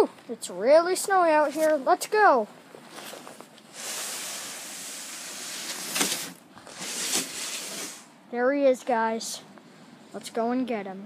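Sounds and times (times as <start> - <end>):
plastic sled scraping over snow: 2.9 - 8.0.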